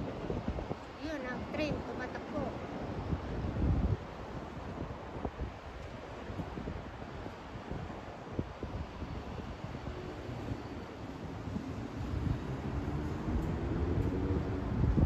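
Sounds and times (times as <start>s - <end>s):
distant city traffic rumble: 0.0s - 15.0s
wind buffeting microphone: 0.0s - 15.0s.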